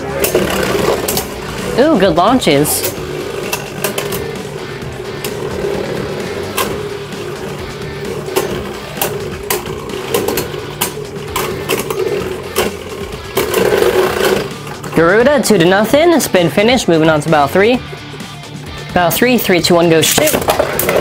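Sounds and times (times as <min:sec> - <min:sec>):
spinning tops clicking: 0:00.0 - 0:15.2
spinning tops whirring: 0:00.0 - 0:16.6.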